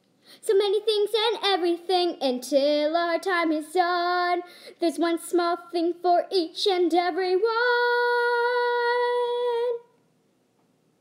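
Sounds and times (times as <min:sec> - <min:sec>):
woman singing a steady note: 0:03.1 - 0:10.0.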